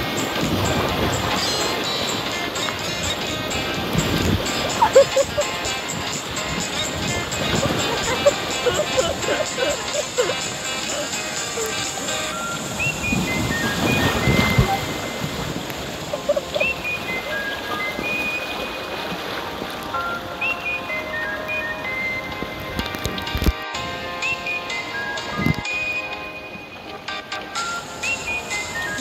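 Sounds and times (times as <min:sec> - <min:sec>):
light melodic tune: 0:00.0 - 0:29.0
stream rushing over rocks: 0:00.0 - 0:29.0.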